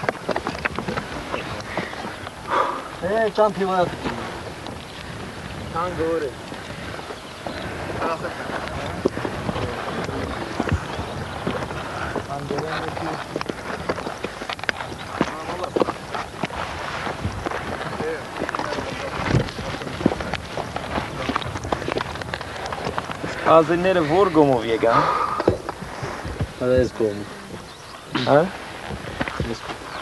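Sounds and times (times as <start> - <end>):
wind-like outdoor rush: 0.0 - 30.0.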